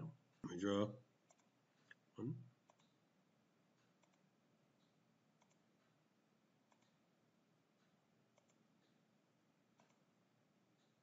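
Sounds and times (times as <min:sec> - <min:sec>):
faint computer mouse clicks: 0:02.6 - 0:03.0, 0:03.8 - 0:05.9, 0:06.7 - 0:07.0, 0:07.8 - 0:09.0, 0:09.8 - 0:10.1.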